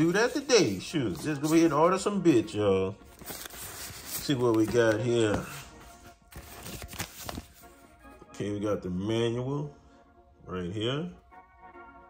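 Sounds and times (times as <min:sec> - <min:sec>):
paper rustling: 0:00.0 - 0:02.1, 0:02.9 - 0:07.9
faint background music: 0:00.0 - 0:12.0.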